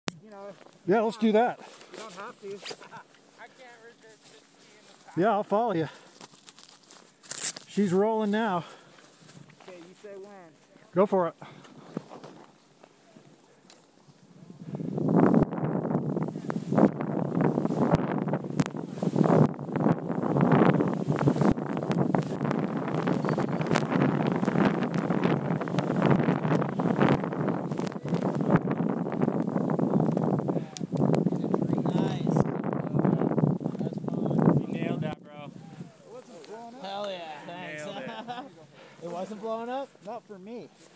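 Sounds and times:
wind rushing over microphone: 14.3s - 36.0s
skis running through powder snow: 16.2s - 19.4s, 20.2s - 28.6s.

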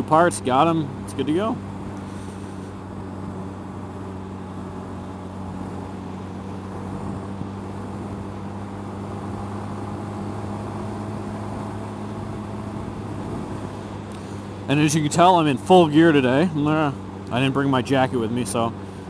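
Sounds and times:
motorcycle engine droning: 0.0s - 19.0s.

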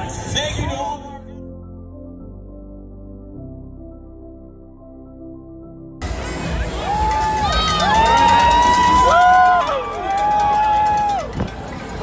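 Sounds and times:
crowd whooping and cheering: 6.5s - 12.0s
people clapping: 6.9s - 12.0s.

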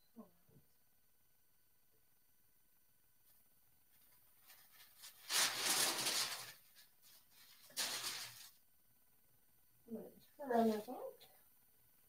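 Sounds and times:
paper and cloth rustling: 3.9s - 8.6s.

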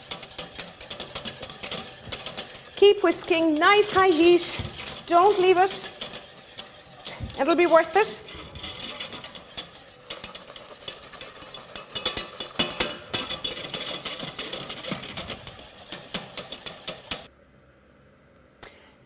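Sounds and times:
whisk beating in metal saucepan: 0.0s - 17.3s.

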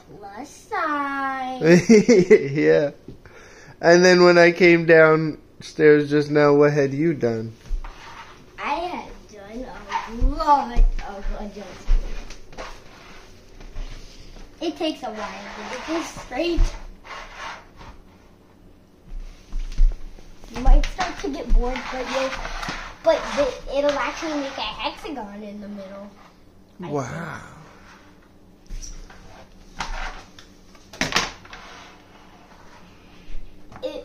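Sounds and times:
plastic lid scraping on floor: 15.1s - 18.0s, 20.5s - 25.0s, 28.9s - 30.4s, 31.0s - 32.9s.

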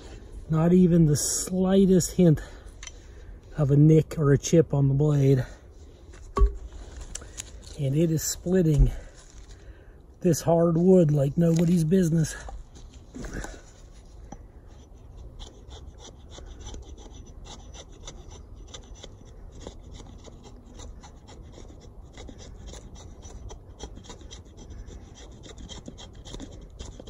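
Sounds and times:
hatchet shaving wood: 10.4s - 27.0s.

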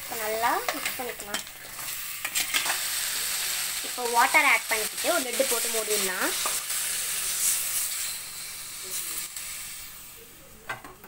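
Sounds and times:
water sizzling in hot pan: 0.0s - 10.3s.

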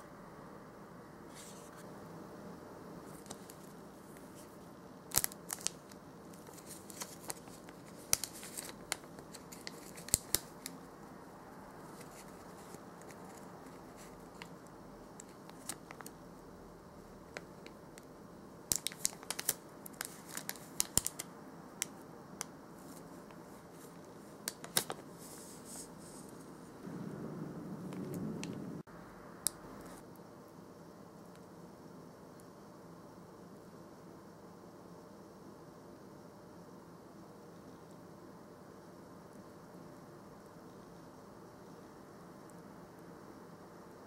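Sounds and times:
plastic bag crinkling: 5.1s - 10.8s, 18.7s - 21.3s.

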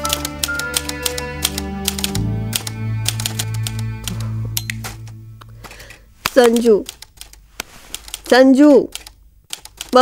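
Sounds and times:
soft background music: 0.0s - 6.8s
typewriter keys clacking: 0.0s - 10.0s.

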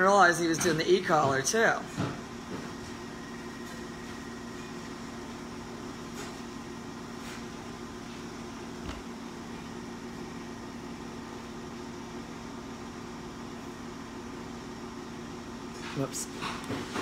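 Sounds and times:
steady appliance hum: 0.0s - 17.0s.

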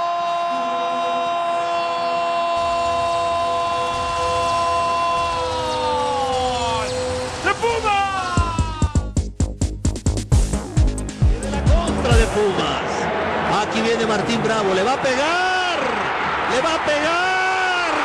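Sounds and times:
music with pounding beat: 8.4s - 12.4s.

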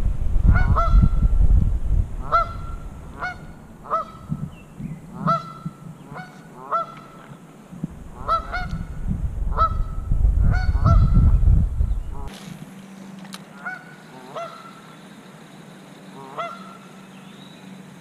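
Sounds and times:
low rumble: 0.0s - 6.3s, 7.7s - 12.3s
goose honking: 0.5s - 1.2s, 2.2s - 4.5s, 5.1s - 7.4s, 8.1s - 11.3s, 13.5s - 14.9s, 16.1s - 17.0s.

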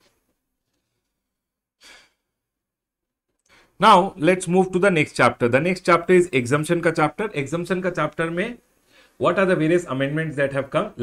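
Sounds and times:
man sighing exhale: 1.8s - 2.2s.

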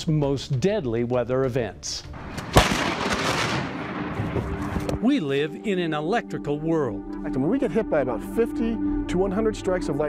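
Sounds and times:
thunderclap: 2.2s - 5.0s.

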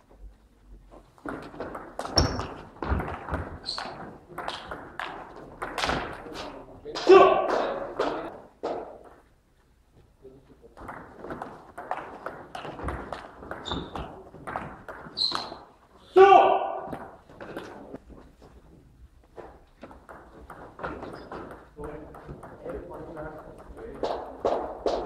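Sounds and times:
voices: 6.2s - 8.4s
loud call: 16.2s - 16.9s.

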